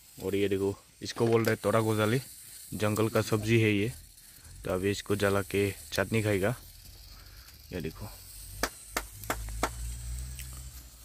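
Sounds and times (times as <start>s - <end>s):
wood fire crackling: 0.0s - 11.0s
sharp pops from embers: 1.0s - 3.6s, 6.7s - 7.7s, 8.4s - 10.9s.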